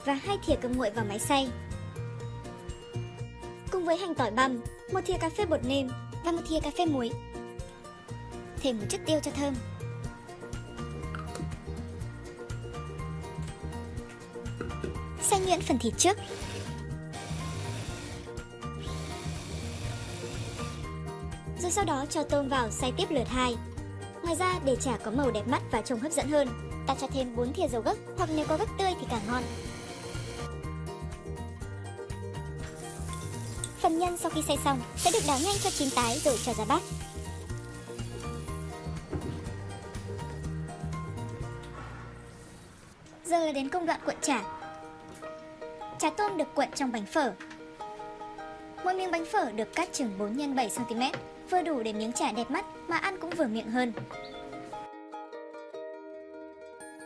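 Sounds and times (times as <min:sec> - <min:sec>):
background music: 0:00.0 - 0:57.0
food chopper grinding: 0:16.2 - 0:20.9, 0:29.2 - 0:30.5
meat sizzling in a frying pan: 0:32.8 - 0:33.8, 0:35.0 - 0:38.6.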